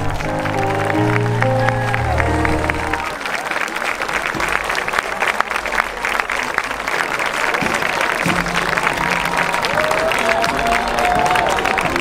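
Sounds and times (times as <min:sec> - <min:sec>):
crowd applauding: 0:00.0 - 0:12.0.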